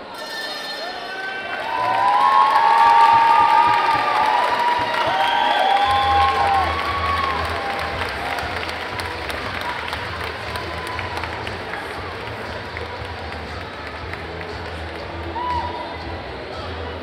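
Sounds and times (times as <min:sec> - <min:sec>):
whoops and shouts: 0:01.0 - 0:08.0, 0:15.3 - 0:15.9
crowd applauding: 0:01.1 - 0:16.0.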